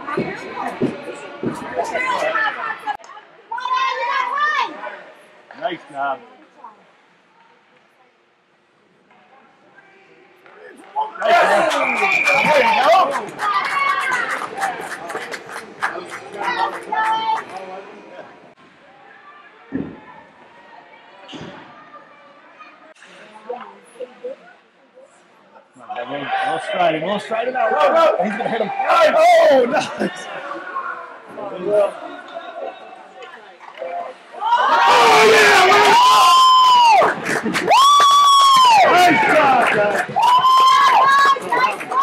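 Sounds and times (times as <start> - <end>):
children chattering: 41.0 - 42.0.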